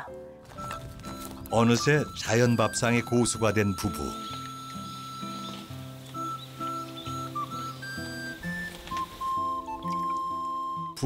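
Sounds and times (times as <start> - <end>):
music with slow held notes: 0.0 - 11.0.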